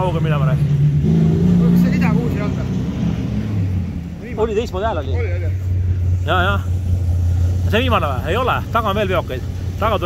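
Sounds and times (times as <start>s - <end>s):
truck engine drone: 0.0s - 10.0s.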